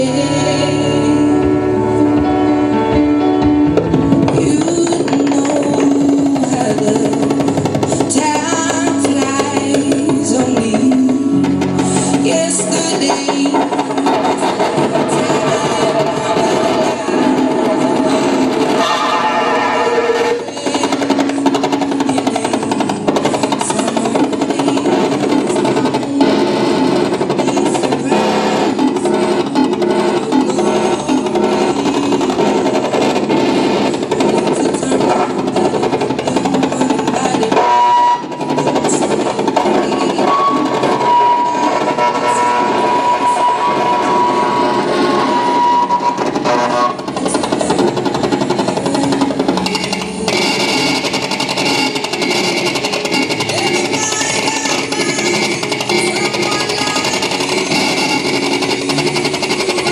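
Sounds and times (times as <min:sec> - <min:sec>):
loud live music: 0:00.0 - 0:59.9
high held note: 0:00.4 - 0:22.2, 0:39.6 - 0:47.2.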